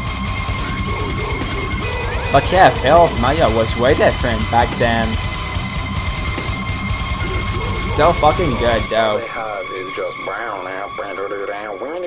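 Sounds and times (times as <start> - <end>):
person singing: 0.8 - 5.2, 7.7 - 11.2.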